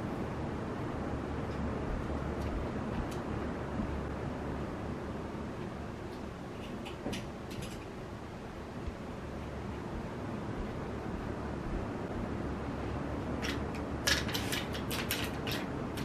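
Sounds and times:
low room hum: 0.0 - 16.0
clothes hangers clattering: 6.6 - 7.9, 13.4 - 16.0.

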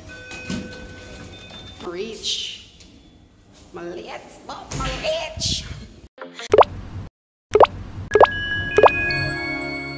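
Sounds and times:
rising bloop pops: 7.5 - 8.9
bell-like chime tones: 8.3 - 9.9.

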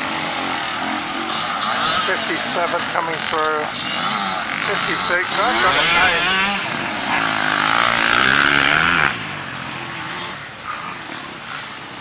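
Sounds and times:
distant motorcycle engines droning: 0.0 - 12.0.

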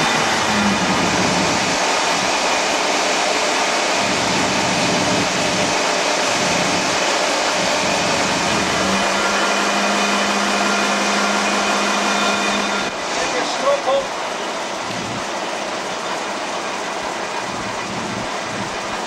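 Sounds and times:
crane diesel engine running: 0.0 - 19.0
steady low hum: 0.0 - 19.0.

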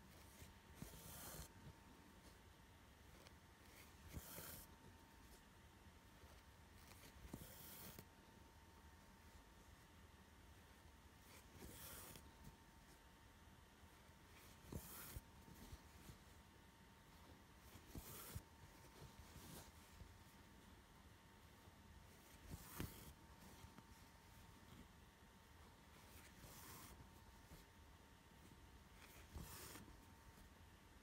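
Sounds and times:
thread swishing through cloth: 11.2 - 13.0, 14.2 - 16.5, 17.1 - 20.6, 21.4 - 25.0, 25.6 - 27.8, 28.4 - 30.5.

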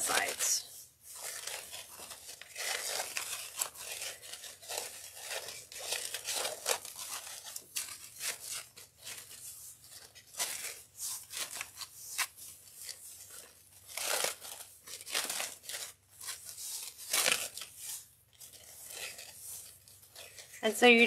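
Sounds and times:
ribbon crinkling rustle: 0.0 - 21.0.

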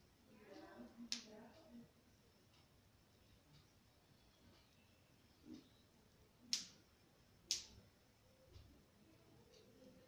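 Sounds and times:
short sharp snaps: 6.4 - 6.8, 7.5 - 7.8.

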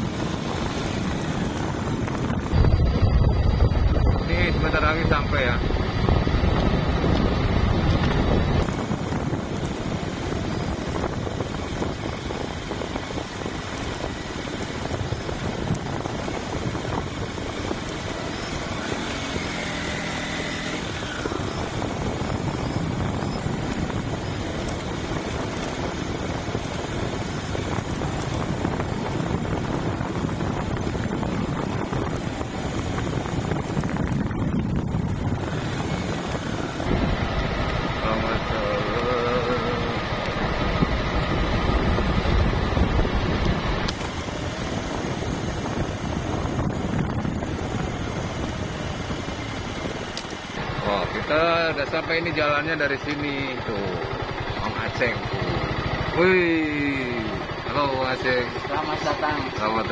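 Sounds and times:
small motorcycle engine: 0.0 - 59.9
wind rushing over microphone: 0.0 - 59.9.

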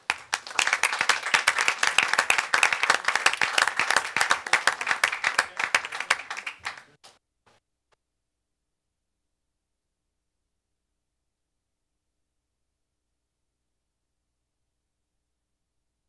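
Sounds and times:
small group applauding: 0.0 - 7.2.

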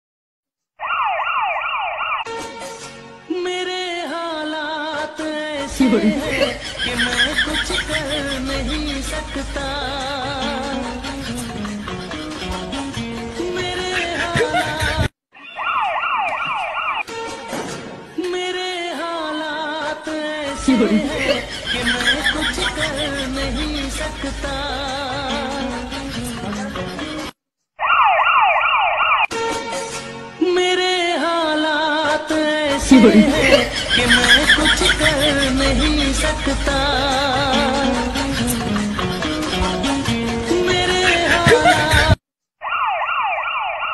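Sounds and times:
emergency siren yelping: 0.8 - 2.3, 15.4 - 17.1, 27.8 - 29.3, 42.6 - 43.9
music: 2.3 - 15.1, 17.0 - 27.4, 29.3 - 42.2.

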